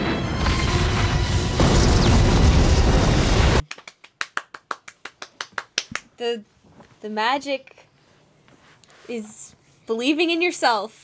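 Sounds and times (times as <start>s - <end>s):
cartoon explosion rumbling: 0.0s - 3.6s
quick hand claps: 3.6s - 6.1s.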